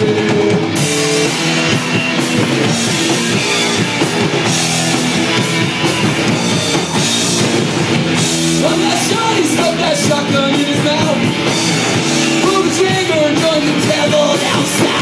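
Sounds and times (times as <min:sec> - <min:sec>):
drum kit: 0:00.0 - 0:15.0
electric bass: 0:00.0 - 0:15.0
electric guitars: 0:00.0 - 0:15.0.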